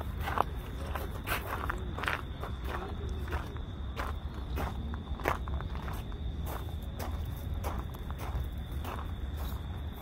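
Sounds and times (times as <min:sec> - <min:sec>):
footsteps on sandy ground: 0:00.0 - 0:10.0.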